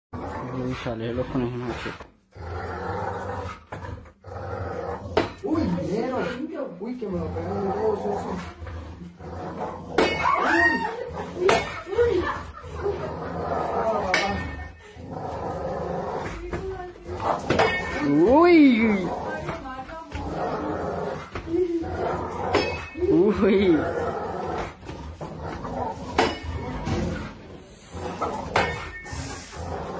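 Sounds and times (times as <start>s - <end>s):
dog growling: 0.2s - 29.9s.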